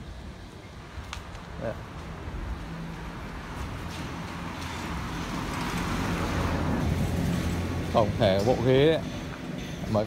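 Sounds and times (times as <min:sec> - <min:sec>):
motor vehicle engine and road noise: 0:00.0 - 0:10.0.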